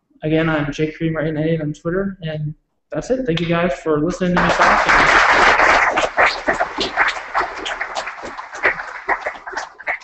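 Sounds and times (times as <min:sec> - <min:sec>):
audience applause: 0:04.4 - 0:10.0
scattered individual claps: 0:04.4 - 0:10.0.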